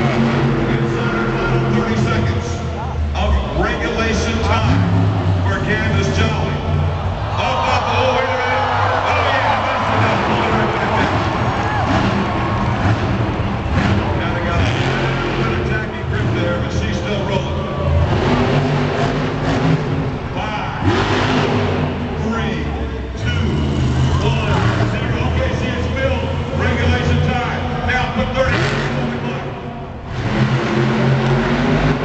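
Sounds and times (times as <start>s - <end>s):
loudspeaker voice: 0.0s - 11.4s, 14.1s - 18.3s, 20.3s - 21.2s, 22.0s - 29.9s
crowd noise: 0.0s - 32.0s
truck engine revving: 0.0s - 32.0s.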